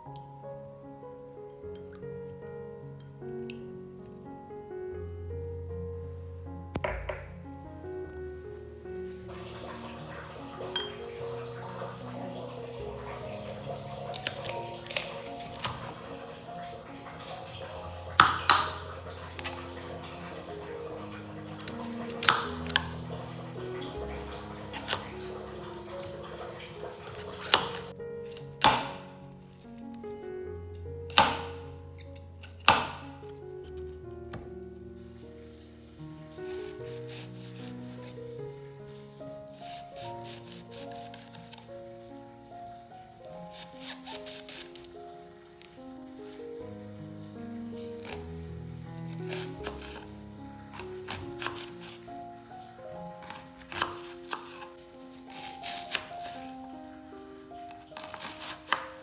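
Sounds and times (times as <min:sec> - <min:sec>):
background music: 0:00.0 - 0:59.0
knife chopping on cutting board: 0:06.8 - 0:07.3, 0:18.2 - 0:18.8, 0:21.6 - 0:22.9, 0:24.7 - 0:25.1, 0:27.0 - 0:29.0, 0:31.1 - 0:31.6, 0:32.4 - 0:33.0, 0:39.7 - 0:41.3, 0:49.3 - 0:50.0, 0:50.7 - 0:52.0, 0:53.2 - 0:54.7, 0:55.3 - 0:56.5, 0:58.0 - 0:59.0.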